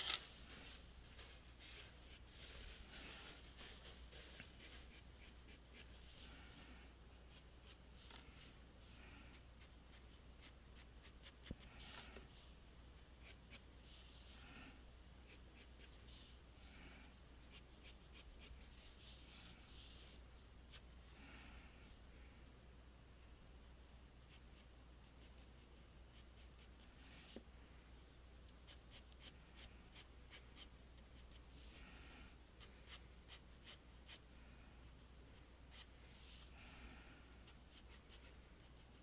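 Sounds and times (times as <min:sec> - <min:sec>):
pencil scratching on paper: 0:01.6 - 0:06.7, 0:07.3 - 0:12.5, 0:13.2 - 0:14.4, 0:15.2 - 0:16.4, 0:17.5 - 0:20.8, 0:24.3 - 0:27.4, 0:28.6 - 0:31.8, 0:32.6 - 0:34.2, 0:34.9 - 0:36.5, 0:37.4 - 0:39.0.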